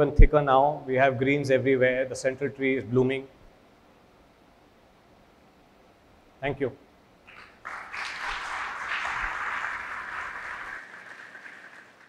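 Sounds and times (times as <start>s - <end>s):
audience applauding: 7.3s - 12.0s.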